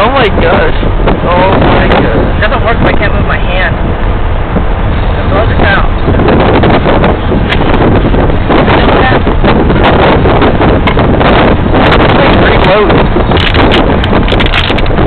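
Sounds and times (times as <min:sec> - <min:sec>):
voices talking: 0:00.0 - 0:03.9, 0:05.1 - 0:06.5, 0:08.5 - 0:09.4, 0:11.9 - 0:13.2
car cabin noise: 0:00.0 - 0:15.0
wind buffeting microphone: 0:00.0 - 0:15.0.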